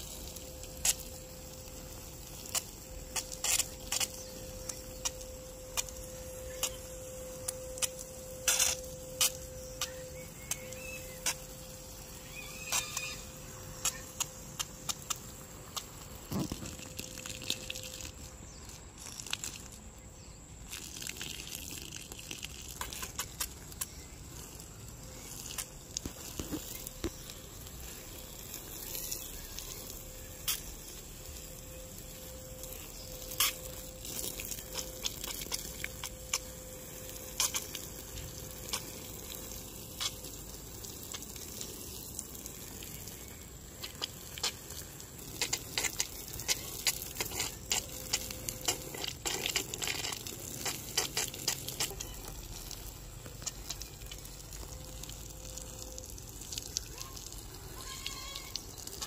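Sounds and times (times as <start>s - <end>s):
hose water spraying on plants: 0.0s - 59.0s.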